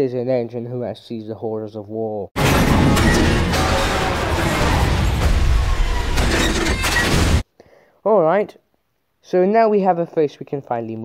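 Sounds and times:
explosion and crashing debris: 0:02.4 - 0:07.4.

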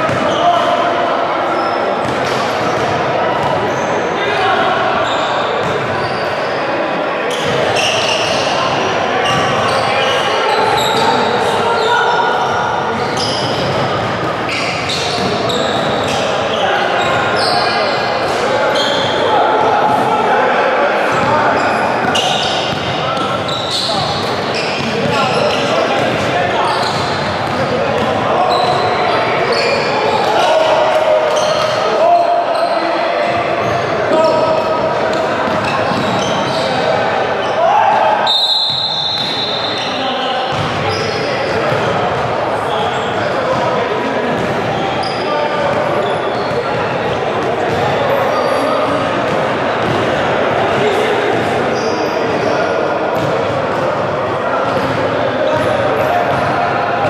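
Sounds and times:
overlapping voices echoing: 0:06.6 - 0:38.3.

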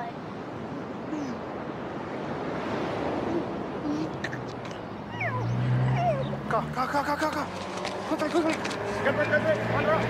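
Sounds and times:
wind: 0:00.0 - 0:10.0
car engine hum: 0:03.2 - 0:10.0
seagull calls: 0:04.7 - 0:06.4.

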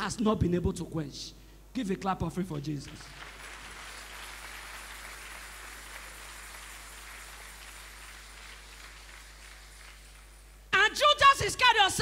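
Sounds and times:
crowd applauding: 0:03.0 - 0:10.6.

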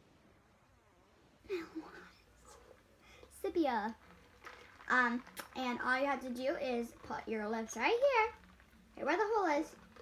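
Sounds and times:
girl speaking: 0:03.3 - 0:04.0, 0:04.9 - 0:08.4, 0:09.0 - 0:09.8.

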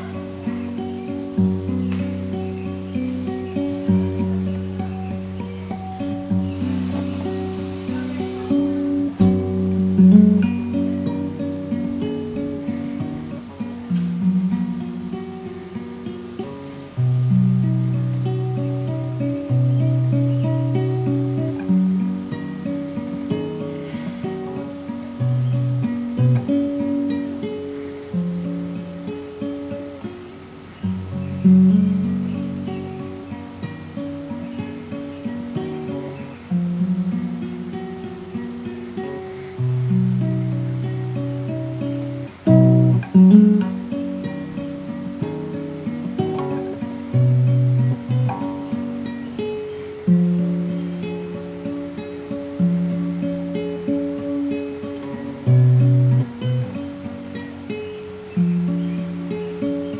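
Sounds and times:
classical guitar fingerstyle: 0:00.0 - 0:59.9.

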